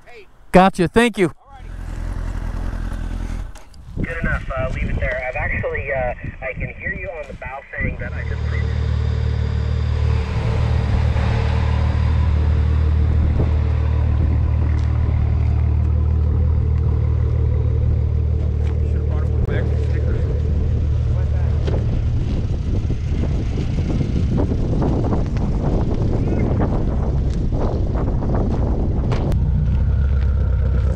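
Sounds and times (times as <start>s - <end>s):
low engine hum: 1.6s - 30.9s
rough uneven low noise: 7.2s - 30.9s.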